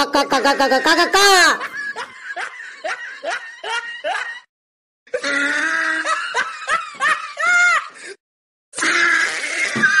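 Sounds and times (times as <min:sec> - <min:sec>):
cartoon laughter: 0:00.0 - 0:04.5, 0:05.1 - 0:07.9.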